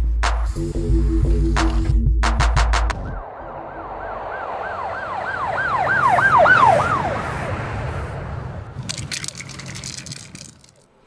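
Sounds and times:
low street rumble: 0:02.9 - 0:11.0
emergency siren yelping: 0:03.2 - 0:07.8
rapid clicks: 0:08.8 - 0:10.9.

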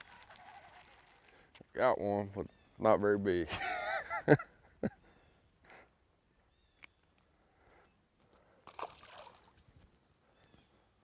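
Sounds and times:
soft splash in water: 0:08.6 - 0:09.6.

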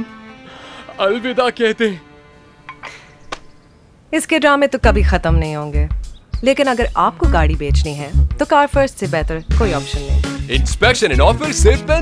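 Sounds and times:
sharp click: 0:02.7 - 0:03.5.

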